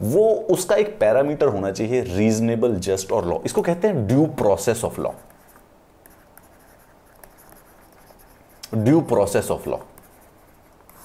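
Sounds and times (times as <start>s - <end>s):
stylus scratching on tablet: 4.7s - 11.0s.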